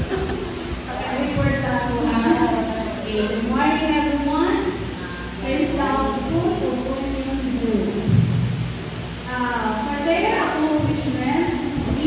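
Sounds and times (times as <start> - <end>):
woman speaking through microphone: 0.0 - 8.4, 9.3 - 12.0
deep low rumble: 0.0 - 12.0.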